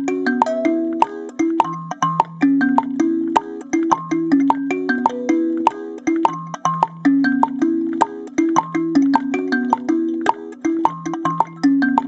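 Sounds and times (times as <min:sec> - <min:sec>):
kalimba plucked: 0:00.0 - 0:12.0
woodblock beat: 0:00.0 - 0:12.0.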